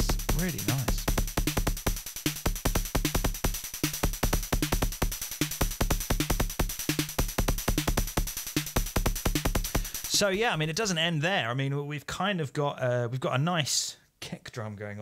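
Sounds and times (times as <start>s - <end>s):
synthesizer kick drum pattern: 0.0s - 10.7s.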